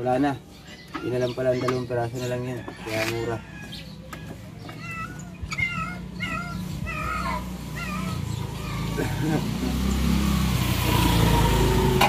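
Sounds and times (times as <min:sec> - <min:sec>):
animal high calls: 0:04.7 - 0:09.6.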